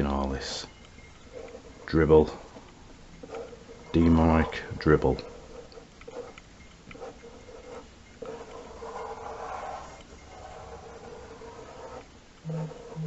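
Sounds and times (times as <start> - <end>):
felt-tip pen scratching on paper: 5.1 - 13.0
phone notification buzzes: 12.5 - 13.0.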